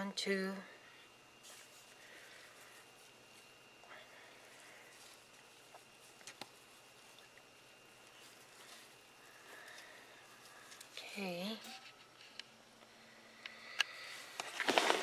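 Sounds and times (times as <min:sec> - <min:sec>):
rustling of damp bedding: 0:01.3 - 0:12.1
faint steady high tone: 0:08.2 - 0:12.4.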